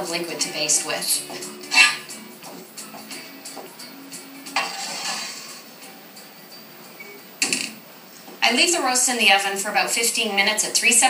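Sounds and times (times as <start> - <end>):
soft background music: 0.0 - 11.0
pan scraping on oven racks: 1.7 - 2.1, 4.5 - 5.8.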